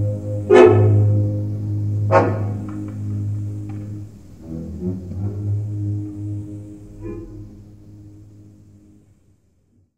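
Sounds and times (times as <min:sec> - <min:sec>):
deep bass note: 0:00.0 - 0:08.8
orchestra holding low notes: 0:00.0 - 0:09.8.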